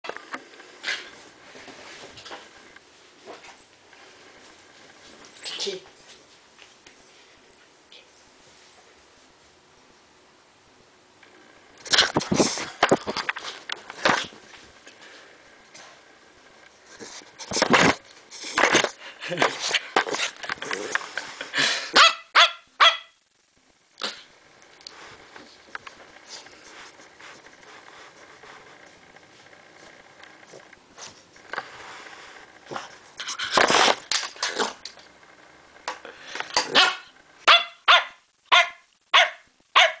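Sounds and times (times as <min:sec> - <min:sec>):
dog barking: 0:22.0 - 0:23.2, 0:36.7 - 0:40.0
rustling near microphone: 0:24.8 - 0:34.1.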